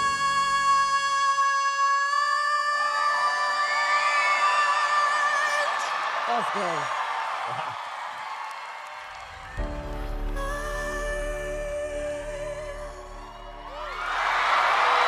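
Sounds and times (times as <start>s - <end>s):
audience cheering and whooping: 2.4s - 9.9s, 13.2s - 15.0s
backing music: 9.4s - 14.8s.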